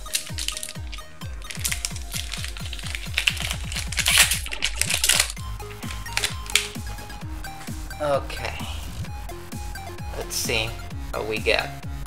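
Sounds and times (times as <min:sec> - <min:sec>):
foil pack crinkling and tearing: 0:00.0 - 0:06.9
fast beat background music: 0:00.0 - 0:12.0.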